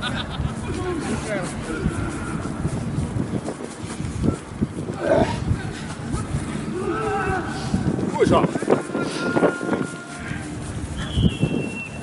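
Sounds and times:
men shouting and chattering: 0.0s - 11.2s
steady background noise: 0.0s - 12.0s.

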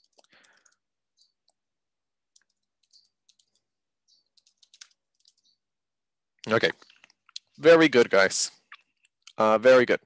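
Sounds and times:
computer keyboard clicking: 0.0s - 0.8s, 2.3s - 3.7s, 4.3s - 5.5s.

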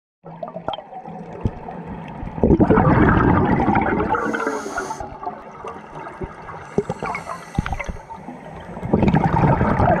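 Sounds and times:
exhaled bubbles rushing: 0.2s - 10.0s
regulator inhaling hiss: 4.2s - 5.2s, 6.7s - 8.3s.

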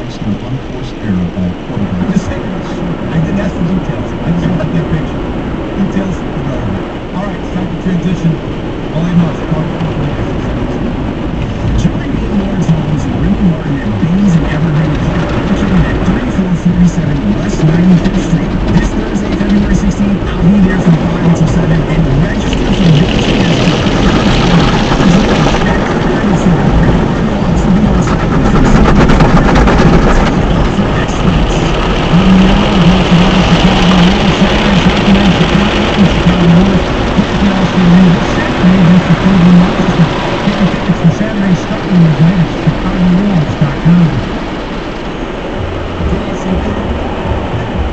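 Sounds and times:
car wash water jets spraying: 0.0s - 47.9s.

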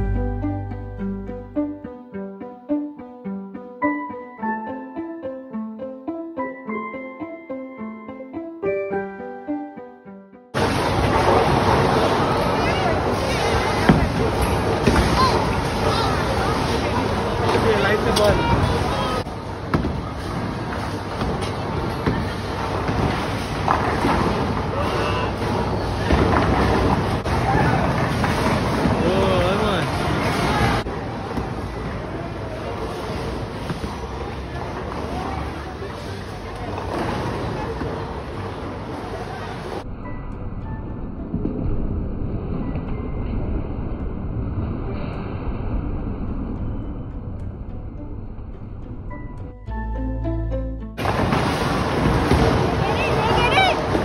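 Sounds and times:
background music: 0.0s - 10.6s, 39.8s - 43.4s, 46.3s - 54.0s
bowling balls rolling down lanes: 10.6s - 39.8s, 51.0s - 54.0s.

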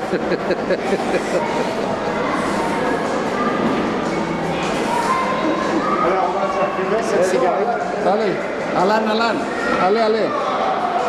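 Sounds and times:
people laughing: 0.0s - 3.0s
rough background noise: 0.0s - 11.0s.

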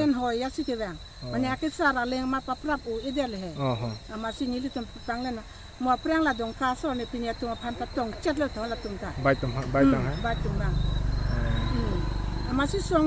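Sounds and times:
woman talking: 0.0s - 9.2s, 10.2s - 10.8s, 11.6s - 13.0s
crickets chirring: 0.0s - 13.0s.

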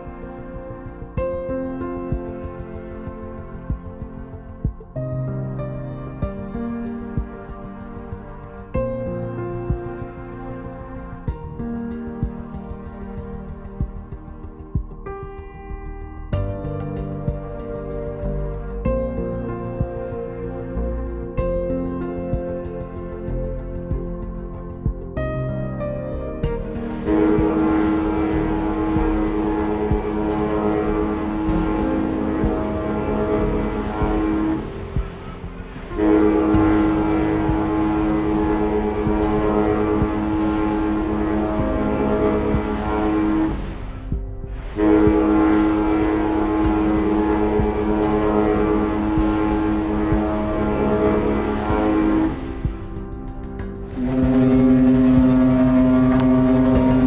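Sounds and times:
ship horn blasts: 0.0s - 14.4s, 16.5s - 24.7s, 25.4s - 57.0s.

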